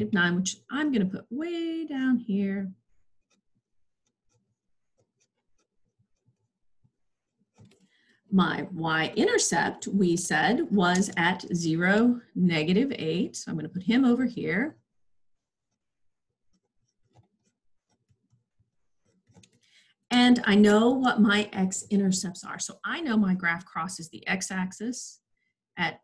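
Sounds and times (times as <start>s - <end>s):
pen scratching on paper: 2.8s - 8.0s, 13.9s - 19.7s.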